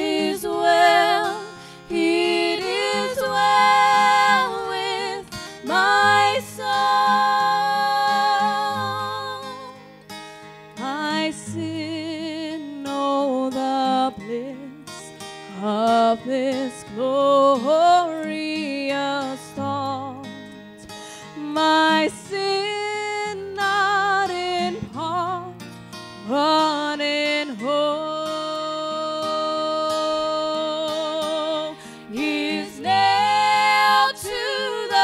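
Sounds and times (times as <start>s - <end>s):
women singing a hymn: 0.0s - 9.8s, 10.8s - 14.7s, 15.6s - 20.3s, 21.4s - 25.6s, 26.2s - 35.0s
strummed acoustic guitar: 0.0s - 35.0s.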